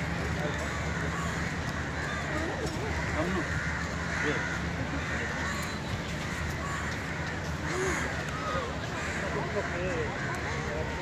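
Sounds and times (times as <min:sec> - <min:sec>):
crows cawing: 0:00.0 - 0:11.0.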